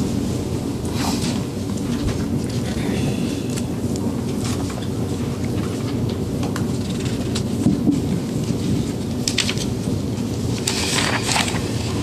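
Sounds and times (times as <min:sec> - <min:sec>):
low rumble of room noise: 0:00.0 - 0:12.0
paper rustling: 0:08.4 - 0:12.0.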